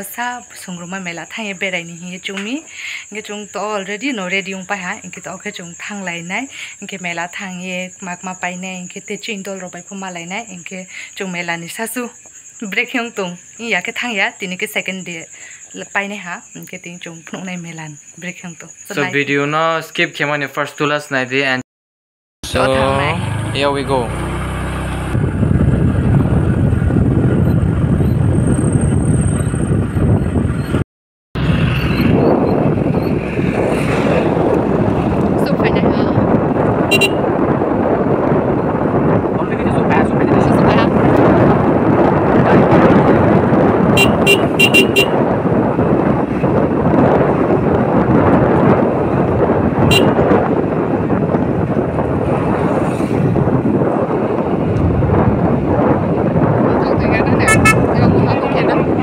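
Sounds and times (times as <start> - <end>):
road and wind noise: 0.0 - 21.6, 22.4 - 59.0
short horn toots: 36.9 - 37.3, 44.0 - 45.2, 49.9 - 50.3, 57.5 - 58.0.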